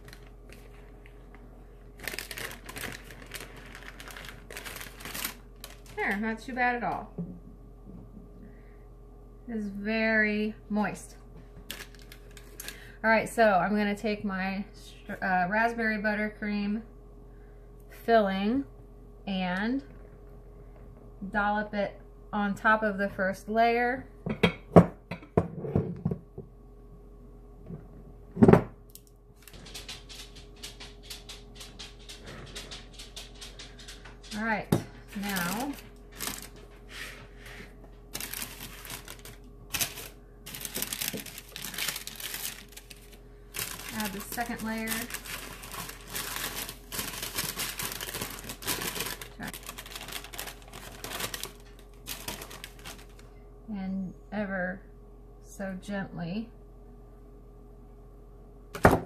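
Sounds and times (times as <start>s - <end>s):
parchment paper crinkling: 0.0s - 6.5s, 11.6s - 12.9s, 35.1s - 53.3s.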